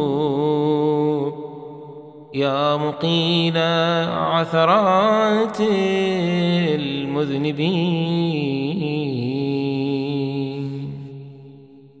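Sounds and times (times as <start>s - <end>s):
man chanting with echo: 0.0s - 12.0s.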